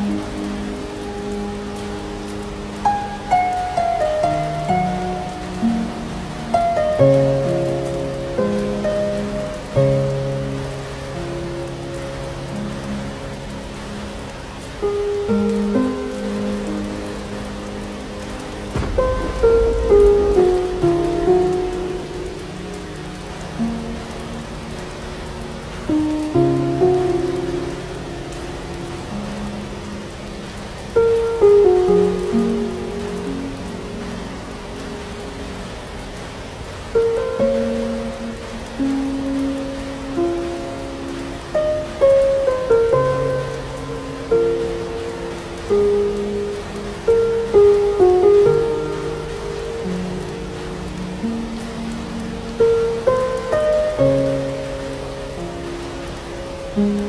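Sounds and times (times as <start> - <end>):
slow soft instrumental music: 0.0 - 57.0
steady rain: 0.0 - 57.0
low rumble of thunder: 18.2 - 24.6.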